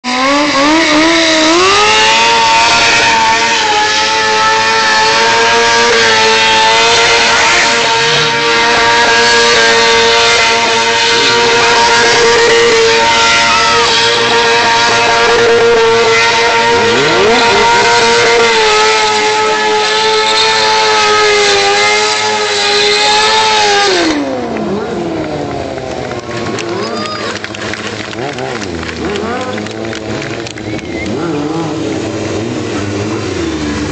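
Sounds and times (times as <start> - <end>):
motorcycle engine revving high: 0.0 - 33.9.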